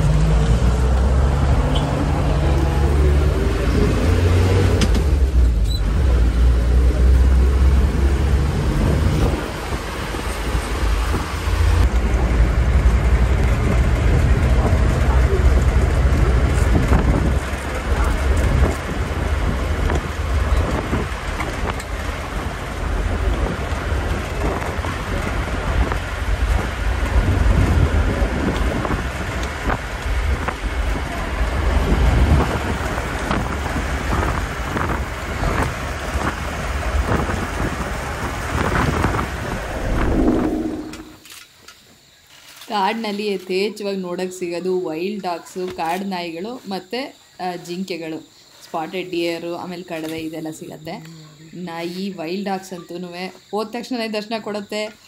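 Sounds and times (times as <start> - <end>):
low engine rumble: 0.0 - 41.3
wind noise: 0.0 - 41.3.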